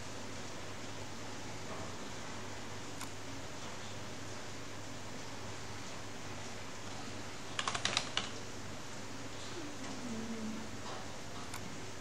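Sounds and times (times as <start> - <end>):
faint background noise: 0.0 - 12.0
keyboard typing: 7.5 - 8.4.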